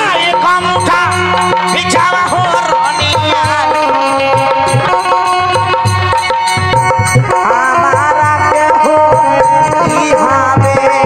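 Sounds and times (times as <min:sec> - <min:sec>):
electronic keyboard melody: 0:00.0 - 0:11.0
hand drum rhythm: 0:00.0 - 0:11.0.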